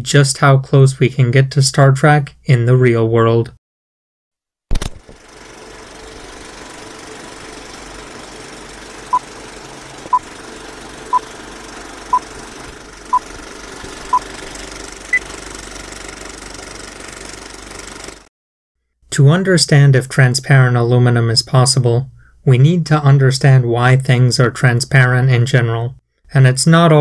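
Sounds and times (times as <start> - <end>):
film projector clatter and hiss: 4.8 - 18.3.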